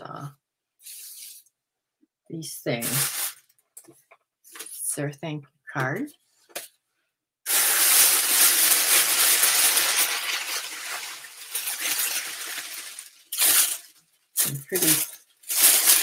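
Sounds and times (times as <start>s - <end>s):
tissue paper crinkling: 2.8s - 3.4s, 7.5s - 16.0s.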